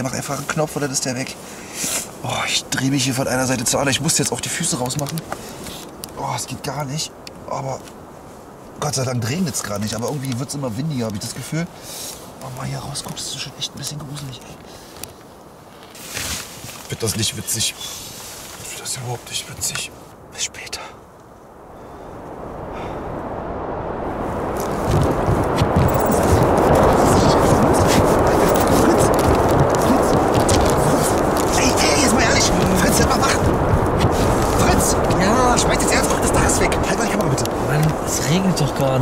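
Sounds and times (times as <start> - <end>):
strong wind roaring: 19.8 - 39.0.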